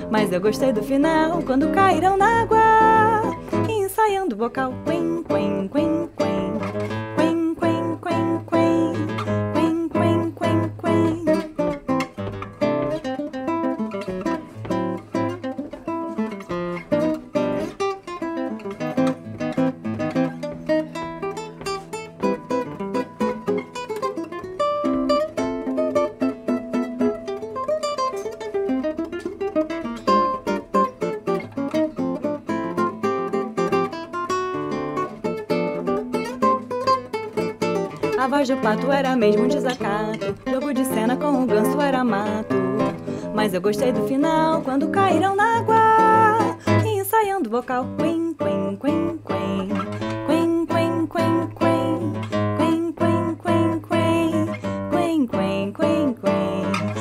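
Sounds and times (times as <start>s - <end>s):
classical guitar bossa nova: 0.0s - 57.0s.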